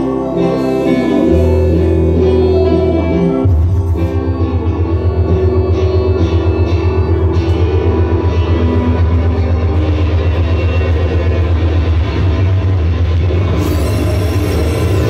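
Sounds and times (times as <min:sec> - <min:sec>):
electric guitar: 0:00.0 - 0:15.0
pulsing bass note: 0:00.0 - 0:15.0.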